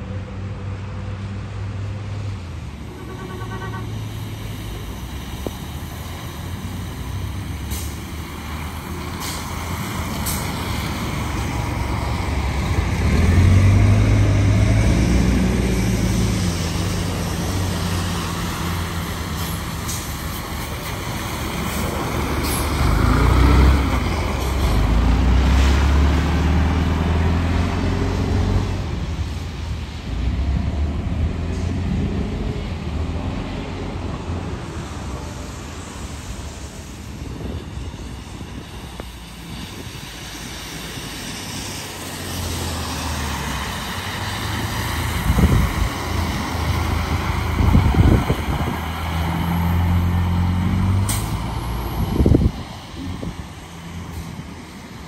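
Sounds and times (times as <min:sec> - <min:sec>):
diesel buses driving past: 0:00.0 - 0:55.0
tyres hissing on wet pavement: 0:02.0 - 0:55.0.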